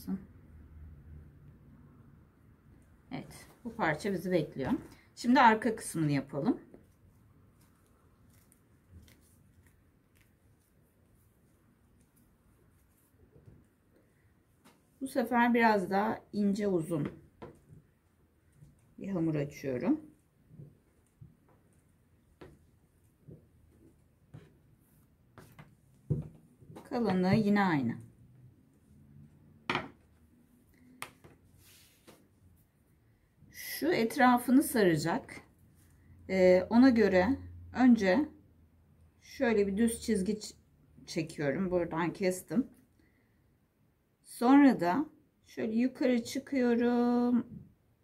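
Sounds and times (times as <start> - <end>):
handling noises on cutting mat: 20.5 - 27.5, 31.0 - 32.4
soft bump on cutting mat: 25.4 - 27.5.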